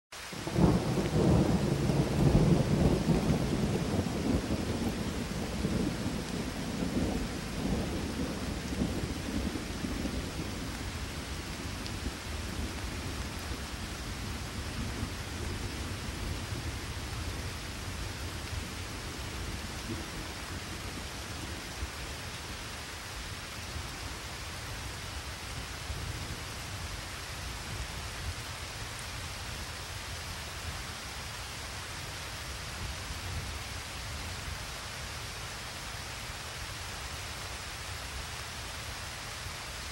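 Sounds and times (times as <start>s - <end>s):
steady rain: 0.1s - 39.9s
thunder rumble: 0.4s - 21.8s.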